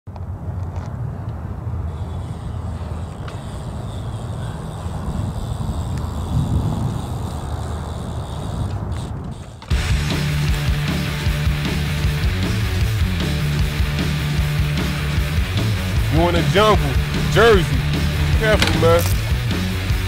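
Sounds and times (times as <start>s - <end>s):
bike tyres rolling over concrete: 1.9s - 12.9s, 13.5s - 20.0s
heavy rock guitar music: 9.7s - 20.0s.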